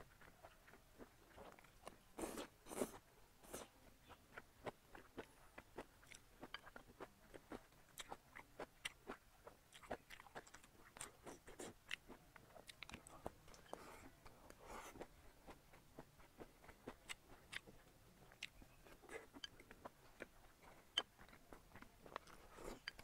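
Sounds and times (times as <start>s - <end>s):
person chewing food: 0.1s - 23.0s.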